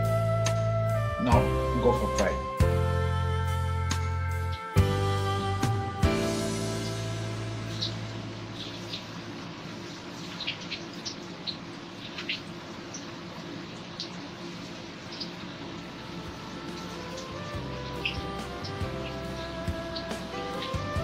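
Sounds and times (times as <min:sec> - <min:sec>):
faint background music: 0:00.0 - 0:10.8, 0:15.2 - 0:21.0
dough deep-frying in oil: 0:06.6 - 0:21.0.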